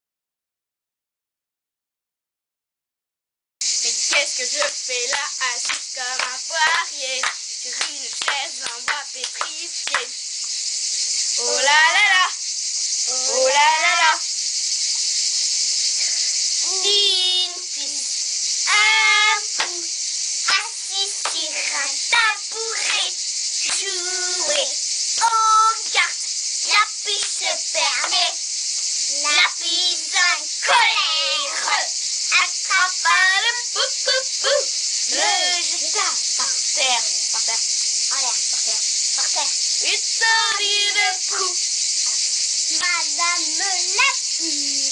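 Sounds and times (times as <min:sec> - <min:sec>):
cicadas buzzing: 0:03.6 - 0:44.9
high-pitched hiss: 0:03.6 - 0:44.9
girl sing-song voice: 0:03.8 - 0:10.1, 0:11.4 - 0:12.4, 0:13.0 - 0:14.3, 0:16.6 - 0:28.4, 0:29.1 - 0:41.6, 0:42.7 - 0:44.9
girl speaking: 0:16.6 - 0:18.1, 0:23.8 - 0:28.4, 0:29.1 - 0:41.6, 0:42.8 - 0:44.9.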